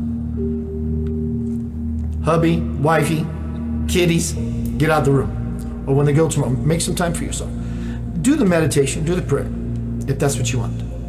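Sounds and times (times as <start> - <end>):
higher tone: 0.0 - 4.8
low steady drone: 0.0 - 11.0.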